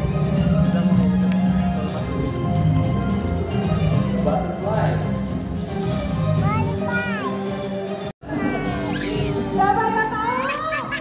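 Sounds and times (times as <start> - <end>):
music playing: 0.0 - 11.0.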